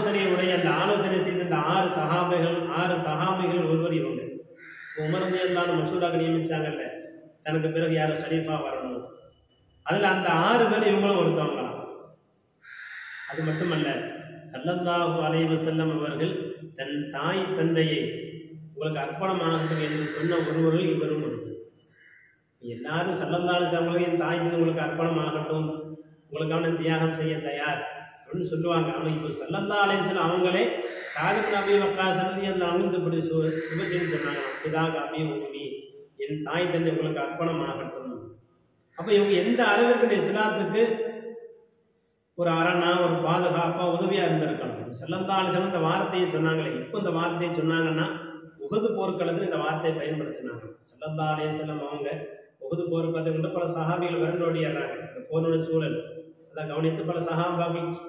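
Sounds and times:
man chanting: 0.0s - 4.2s, 5.0s - 8.9s, 13.3s - 21.5s, 22.6s - 38.2s, 39.0s - 41.0s.

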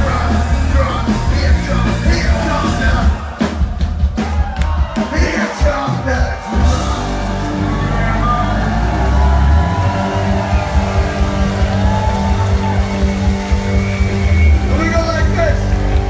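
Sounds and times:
live band music through pa: 0.0s - 16.0s.

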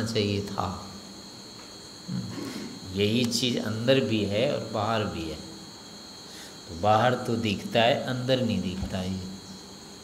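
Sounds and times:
crickets chirping: 0.0s - 10.0s
man lecturing: 2.9s - 5.4s, 6.7s - 9.4s.

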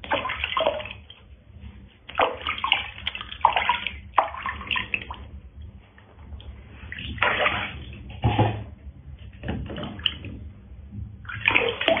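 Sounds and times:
water sloshing in plastic tub: 0.0s - 12.0s
water splash being poured: 6.9s - 8.5s, 11.2s - 12.0s.

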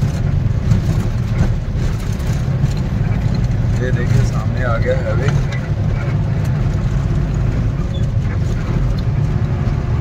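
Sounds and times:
knocks from rough road: 0.0s - 4.6s
diesel truck engine rumbling: 0.0s - 10.0s.

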